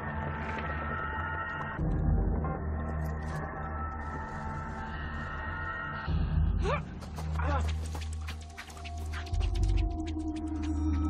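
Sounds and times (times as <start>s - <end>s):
rapid fluttering and swishing: 7.3s - 11.0s
low music drone: 8.8s - 11.0s.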